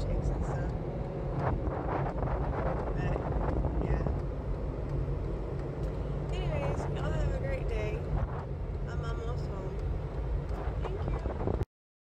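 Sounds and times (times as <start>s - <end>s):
car cabin engine and road rumble: 0.0s - 11.6s.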